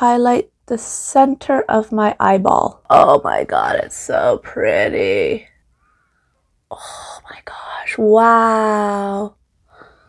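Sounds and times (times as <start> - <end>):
woman whispering breathily: 6.7 - 8.2.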